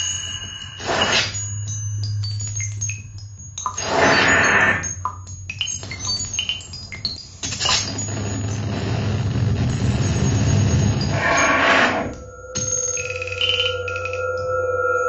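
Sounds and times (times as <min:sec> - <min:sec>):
held ringing tones: 0:00.0 - 0:07.0, 0:10.1 - 0:15.0
low hum: 0:11.0 - 0:15.0.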